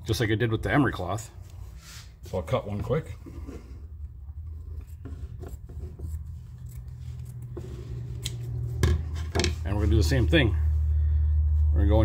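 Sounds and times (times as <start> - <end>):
low background hum: 0.0 - 12.0
scissors snipping paper: 4.6 - 8.5.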